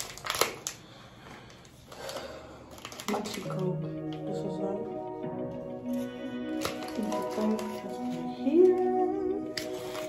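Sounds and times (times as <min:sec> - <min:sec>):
wrapper tearing: 0:00.0 - 0:03.7, 0:05.9 - 0:08.7, 0:09.5 - 0:10.0
wrapper rustling: 0:00.0 - 0:04.3, 0:05.8 - 0:10.0.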